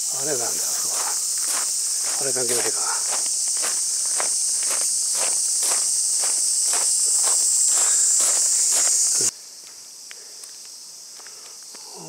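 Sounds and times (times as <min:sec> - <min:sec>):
insects droning in trees: 0:00.0 - 0:12.0
footsteps on grass: 0:00.3 - 0:09.8.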